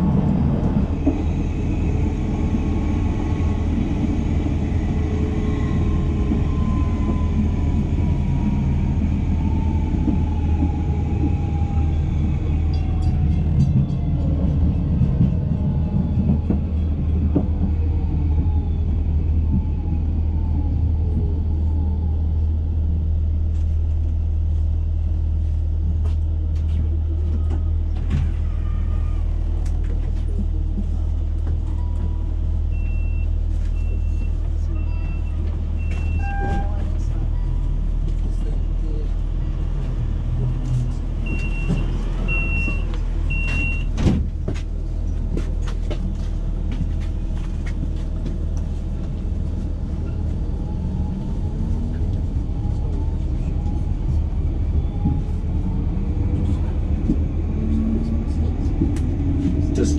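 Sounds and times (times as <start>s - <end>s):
electric tram humming: 0.0s - 59.9s.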